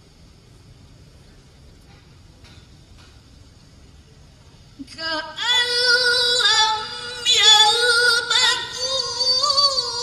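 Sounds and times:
girl reciting melodically: 0:04.8 - 0:10.0.

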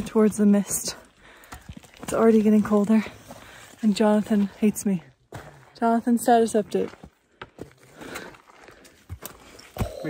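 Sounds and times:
soft footsteps on trail: 0:00.0 - 0:10.0.

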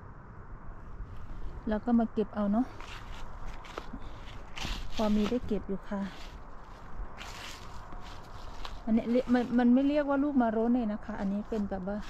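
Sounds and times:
footsteps on wet forest floor: 0:02.7 - 0:09.9, 0:11.1 - 0:12.0.

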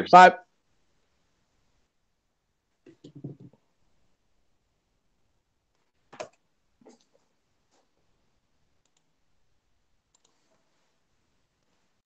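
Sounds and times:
computer mouse clicks: 0:08.8 - 0:09.1, 0:10.1 - 0:10.4.

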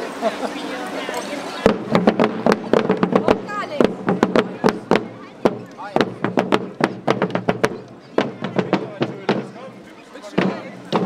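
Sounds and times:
marching drums: 0:01.6 - 0:11.0.

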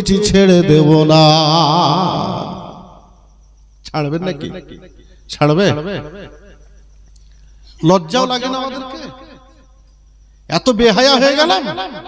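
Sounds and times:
man chanting into a microphone: 0:00.0 - 0:03.0.

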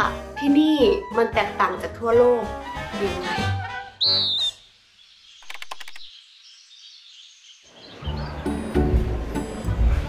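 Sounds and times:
birds chirping: 0:03.3 - 0:09.8
rattle of clicks: 0:05.4 - 0:06.1.

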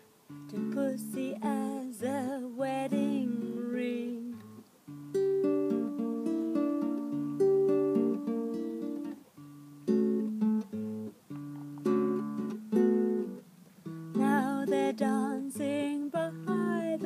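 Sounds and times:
fingerpicked acoustic guitar: 0:00.0 - 0:17.0.

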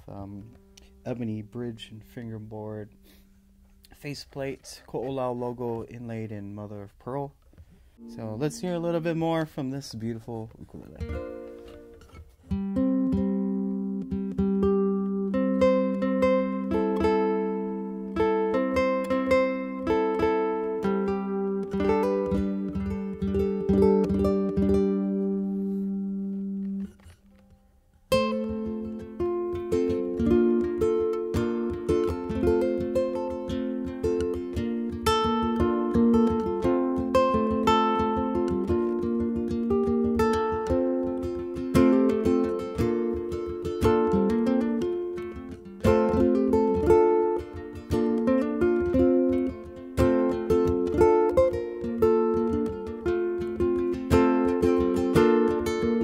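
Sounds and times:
electric ukulele playing: 0:00.0 - 0:06.7, 0:08.0 - 0:56.0.

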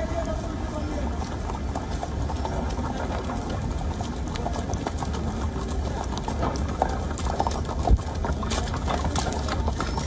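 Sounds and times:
wind rumble on microphone: 0:00.0 - 0:09.6
hooves clopping on wet road: 0:00.0 - 0:10.0.

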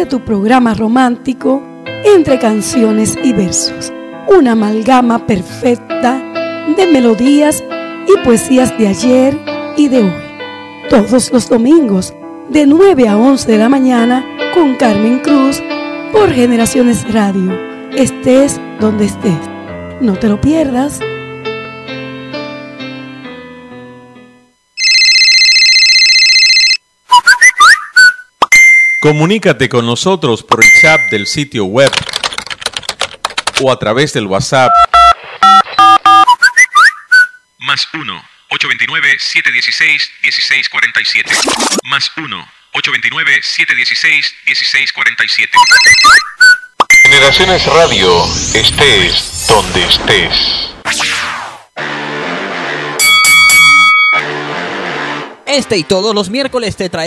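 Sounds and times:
quiet music bed: 0:00.0 - 0:24.8
trilling telephone ringtone: 0:24.8 - 0:29.3, 0:30.6 - 0:31.5, 0:45.6 - 0:48.5, 0:53.0 - 0:54.2
steady beep: 0:27.1 - 0:29.3, 0:30.5 - 0:31.6, 0:34.7 - 0:37.5, 0:45.6 - 0:51.6, 0:53.0 - 0:54.3.

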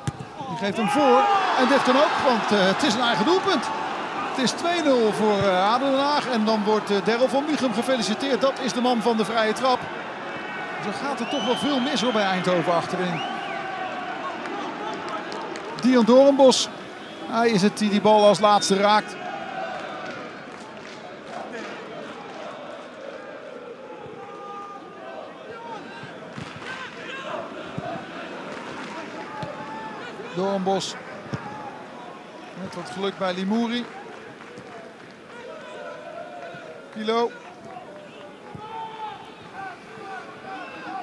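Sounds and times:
ball being kicked: 0:00.0 - 0:00.3
crowd noise: 0:00.0 - 0:41.0
people shouting: 0:37.3 - 0:41.0.

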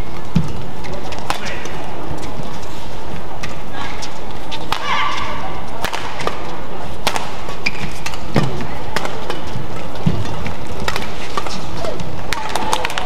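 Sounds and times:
racket hitting shuttlecock: 0:00.0 - 0:02.4, 0:03.4 - 0:13.0
arena crowd noise: 0:00.0 - 0:13.0
shoe squeak on court: 0:07.5 - 0:08.3.

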